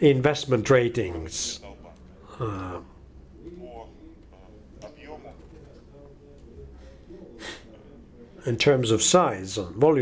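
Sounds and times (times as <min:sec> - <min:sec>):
steady low hum: 0:00.0 - 0:10.0
talk: 0:00.0 - 0:10.0
man murmuring faintly: 0:01.5 - 0:08.5.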